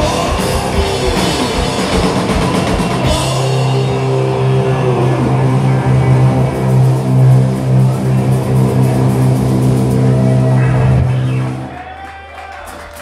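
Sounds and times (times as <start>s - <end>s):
metal band playing a low chord: 0.0s - 11.7s.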